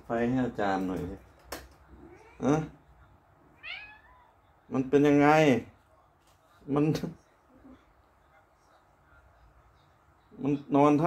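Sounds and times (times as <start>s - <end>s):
cat meowing: 1.9s - 2.6s, 3.5s - 4.4s.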